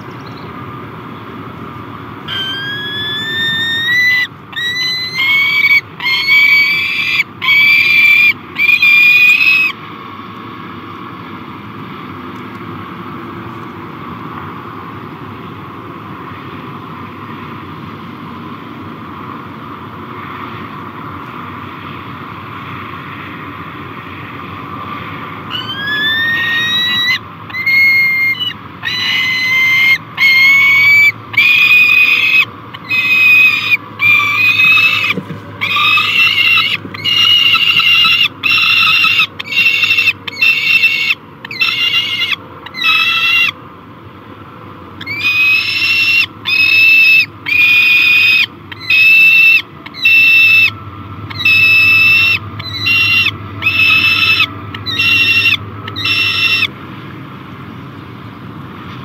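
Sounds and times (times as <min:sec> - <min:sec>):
young falcon begging calls: 0:02.2 - 0:09.8, 0:25.5 - 0:43.6, 0:45.0 - 0:56.7.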